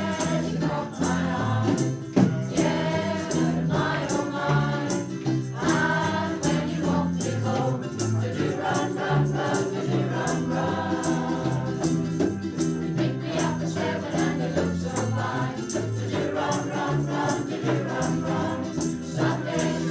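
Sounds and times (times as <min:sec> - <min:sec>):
women's choir singing: 0:00.0 - 0:19.9.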